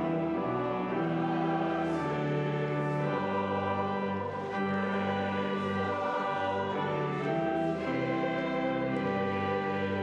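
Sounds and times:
choir singing with instruments: 0.0 - 10.0.

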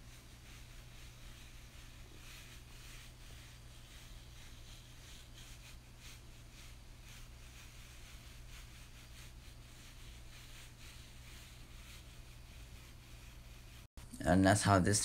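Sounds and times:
hair brush swishing on hair: 0.0 - 15.0.

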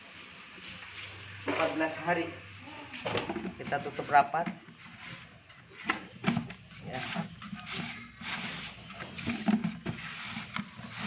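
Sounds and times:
plastic rubbing and creaking: 3.0 - 11.0.

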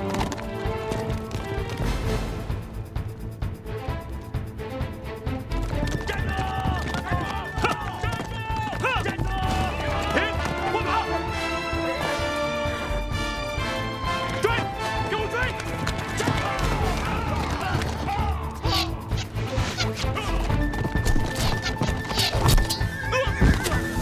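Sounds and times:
background music: 0.0 - 24.0
horse hoofbeats galloping: 0.0 - 24.0
horses neighing: 5.6 - 12.1, 13.8 - 24.0.

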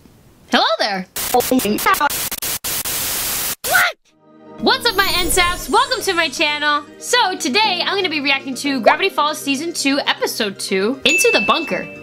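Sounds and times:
loud static hiss: 1.1 - 3.9
chopped voice snippets: 4.6 - 6.8.

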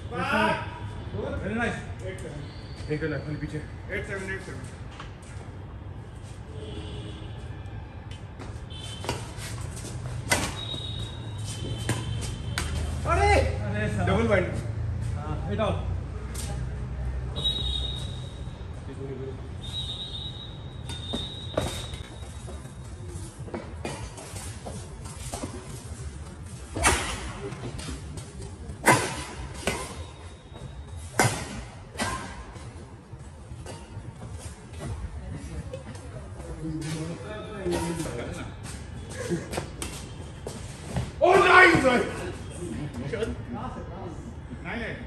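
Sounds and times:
racket hitting shuttlecock: 26.7 - 28.1, 28.8 - 30.0.

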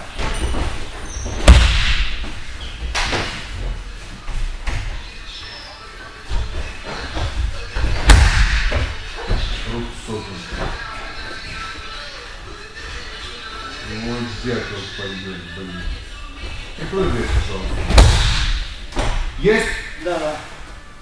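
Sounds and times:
bodies thudding onto padded mats: 0.0 - 3.8.

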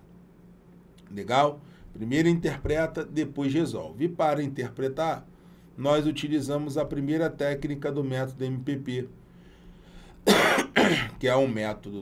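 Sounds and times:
man clearing his throat: 10.2 - 11.2.

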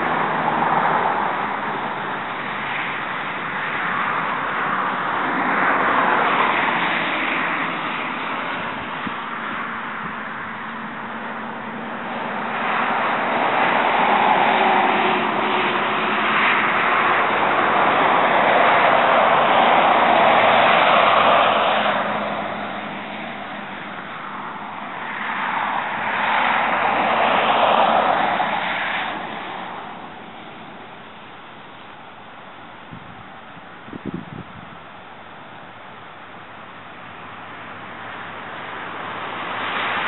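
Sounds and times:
road traffic passing: 0.0 - 40.0.

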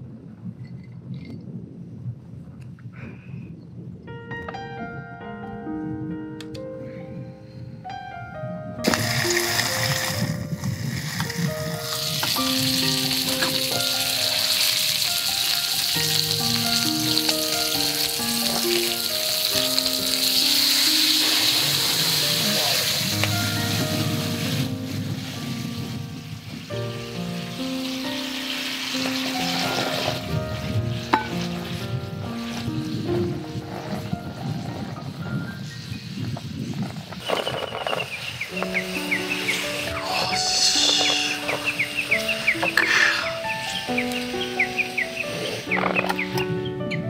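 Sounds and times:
background piano music: 3.8 - 47.0
skewers sizzling in pan: 8.8 - 46.4.

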